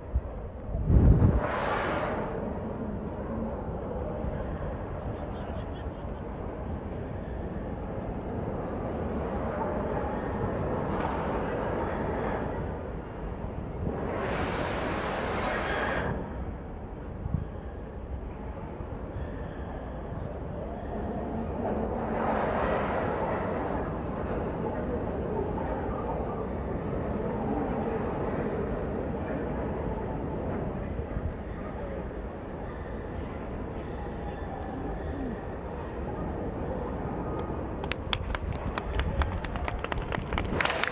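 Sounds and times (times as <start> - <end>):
distant crowd murmuring: 0.0 - 40.9
low hall rumble: 0.0 - 40.9.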